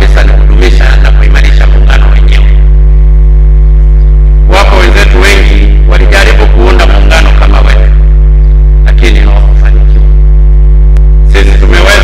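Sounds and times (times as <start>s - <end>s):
man speaking: 0.0s - 2.6s, 4.5s - 8.0s, 8.8s - 10.1s, 11.3s - 12.0s
low electrical hum: 0.0s - 12.0s.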